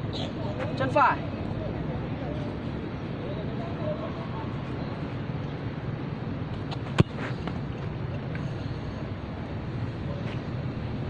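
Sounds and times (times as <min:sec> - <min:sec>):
foot kicking football: 0:06.6 - 0:07.9.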